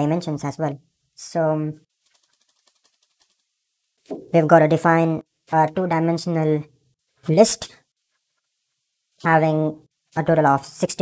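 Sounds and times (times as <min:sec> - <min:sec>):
faint keyboard typing: 0:02.0 - 0:03.5.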